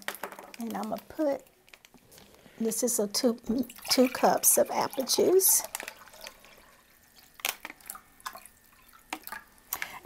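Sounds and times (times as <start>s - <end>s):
juice pouring into glass bowl: 3.5s - 10.0s.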